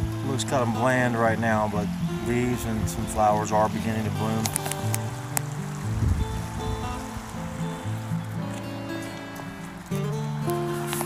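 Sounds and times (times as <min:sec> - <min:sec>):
slow sustained background music: 0:00.0 - 0:11.0.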